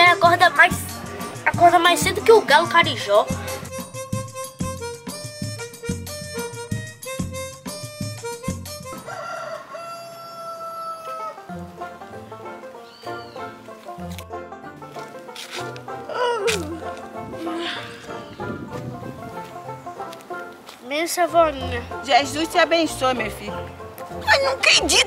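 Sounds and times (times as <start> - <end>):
upbeat music with percussive beat: 0.0 - 9.1
rooster crowing: 8.9 - 11.5.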